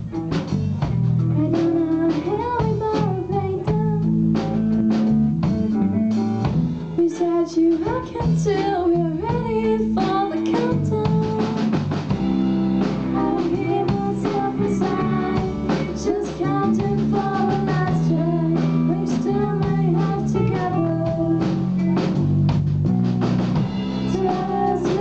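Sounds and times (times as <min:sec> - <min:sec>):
indie pop rock band playing: 0:00.0 - 0:25.0
woman singing lead vocal: 0:01.3 - 0:04.1, 0:07.0 - 0:11.8, 0:13.1 - 0:21.7, 0:24.0 - 0:25.0.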